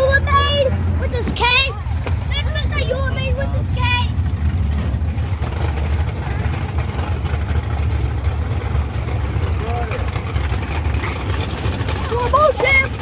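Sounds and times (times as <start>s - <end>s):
race car engines rumbling: 0.0s - 13.0s
faint voices: 5.7s - 7.4s.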